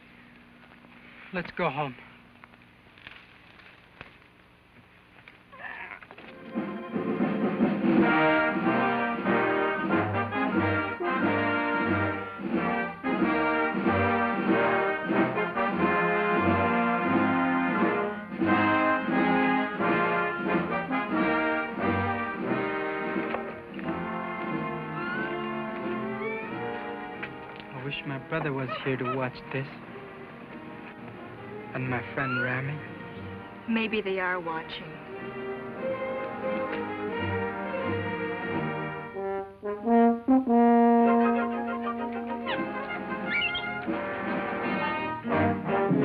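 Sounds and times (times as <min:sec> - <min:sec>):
orchestral music with brass: 0:06.3 - 0:46.0.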